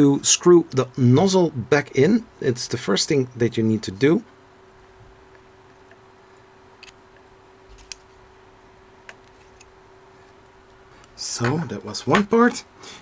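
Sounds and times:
faint steady hum: 0:00.0 - 0:13.0.

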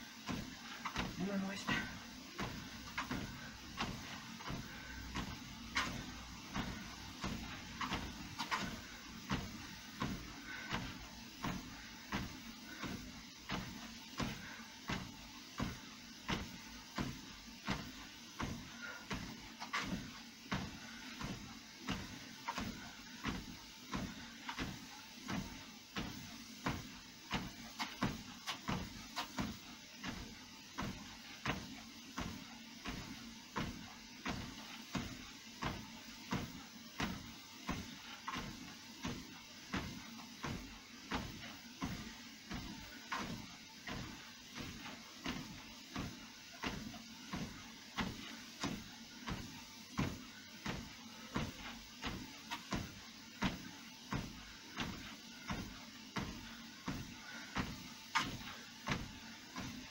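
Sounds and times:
footfalls on treadmill belt: 0:00.0 - 0:59.9
treadmill running: 0:00.0 - 0:59.9.

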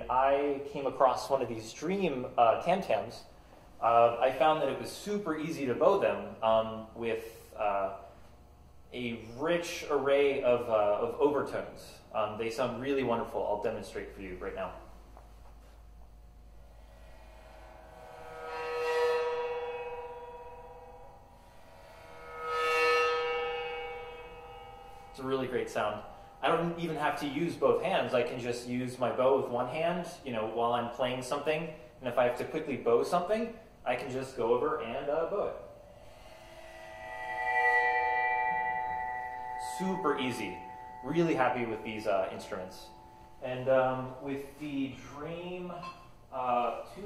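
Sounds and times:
bowed tam-tam: 0:16.5 - 0:30.6, 0:31.3 - 0:47.0.

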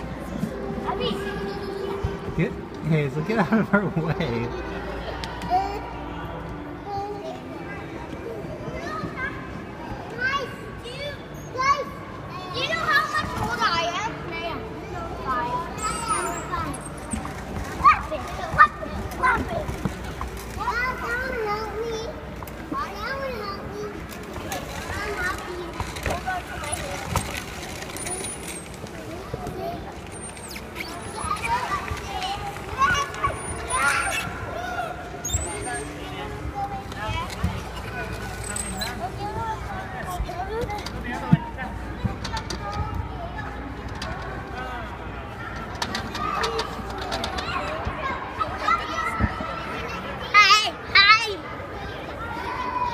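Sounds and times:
adult chatter: 0:00.0 - 0:52.9
children playing: 0:00.0 - 0:52.9.

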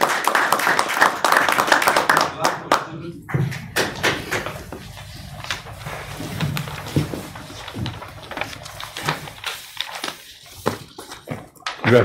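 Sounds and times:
papers rustling: 0:03.7 - 0:12.0.

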